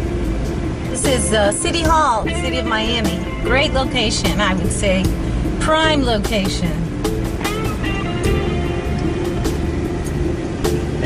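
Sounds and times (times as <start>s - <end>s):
car driving rumble: 0.0s - 11.0s
music with a beat: 0.0s - 11.0s.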